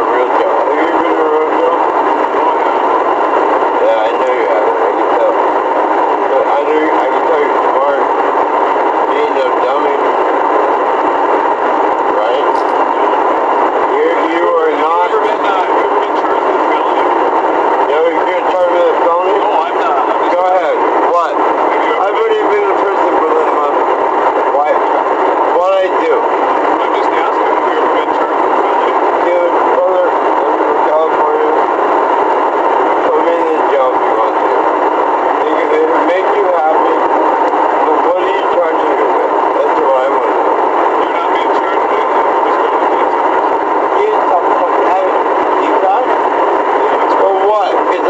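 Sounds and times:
steady loud hiss: 0.0 - 48.0
muffled tinny voices: 12.0 - 48.0.

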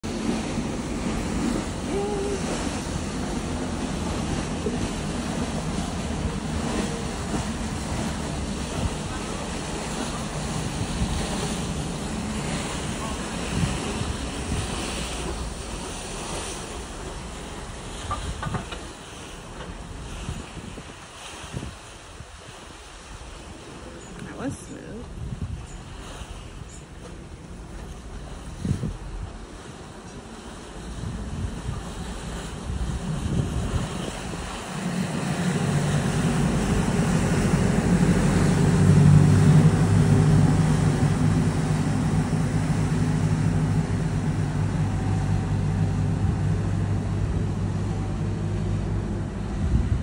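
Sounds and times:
wind buffeting microphone: 0.0 - 23.7, 24.3 - 50.0
sea water rushing: 0.0 - 50.0.

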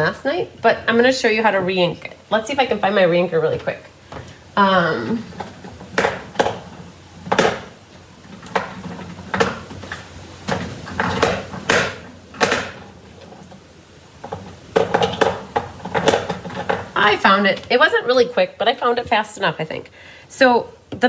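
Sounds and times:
small hard items clicking and knocking: 3.5 - 13.6, 14.2 - 17.2.

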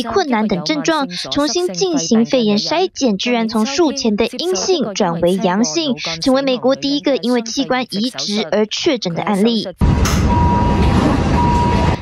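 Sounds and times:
medical alarm long high beeps: 10.2 - 12.0.

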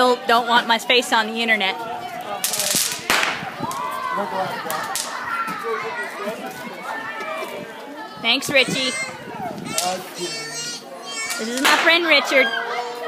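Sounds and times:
children shouting: 1.8 - 13.0
sharp crack: 2.4 - 3.8, 4.7 - 5.2, 11.3 - 12.0.

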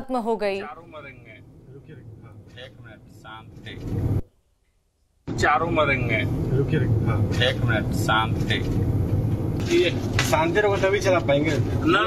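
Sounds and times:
road and engine noise in car: 0.6 - 4.3, 5.3 - 12.0
passengers talking: 5.4 - 9.0, 9.6 - 12.0.

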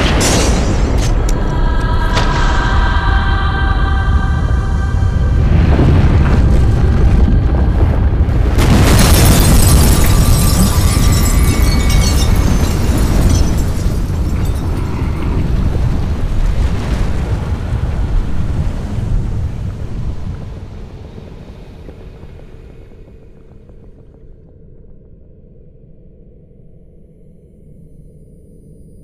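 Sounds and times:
deep rumbling explosion effect: 0.0 - 24.9.

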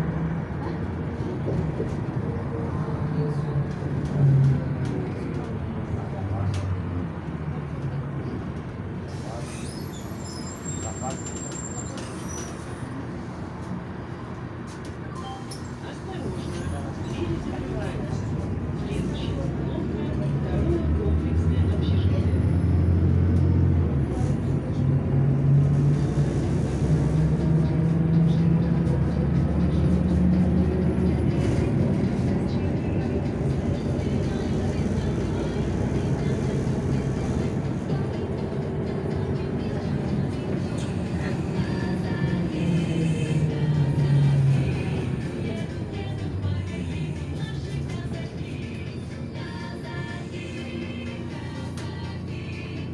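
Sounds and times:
bus engine rumble: 0.0 - 52.9.

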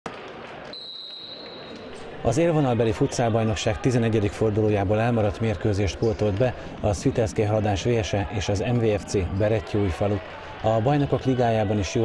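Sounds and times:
indoor crowd murmur: 0.1 - 12.0
referee's whistle: 0.7 - 1.8.

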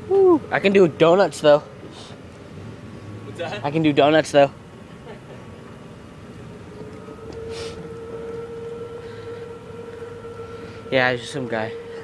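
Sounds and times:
low hum: 0.0 - 12.0
wheels rolling noise: 0.0 - 12.0
electric motor whining: 6.1 - 12.0.

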